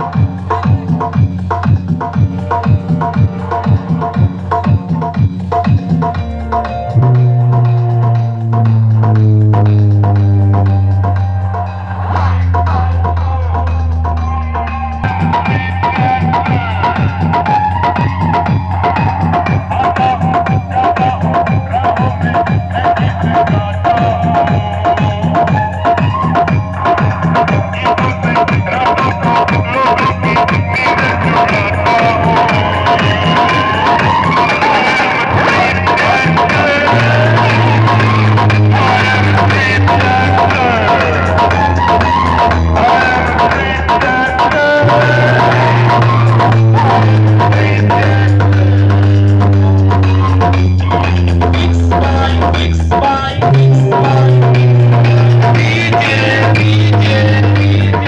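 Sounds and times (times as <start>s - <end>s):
heavy kick drum: 0.0s - 11.4s, 15.0s - 34.3s
loud electronic dance music: 0.0s - 58.0s
held low bass note: 2.2s - 16.2s, 36.9s - 43.9s, 44.8s - 58.0s.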